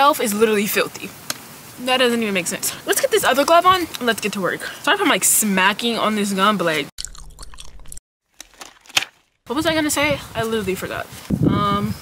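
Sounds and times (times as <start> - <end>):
gum chewing mouth clicks: 7.0 - 8.0.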